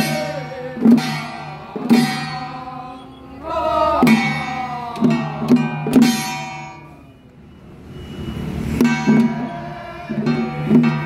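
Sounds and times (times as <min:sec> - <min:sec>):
hand drums and brass percussion: 0:00.0 - 0:02.9, 0:04.0 - 0:07.0, 0:08.2 - 0:11.0.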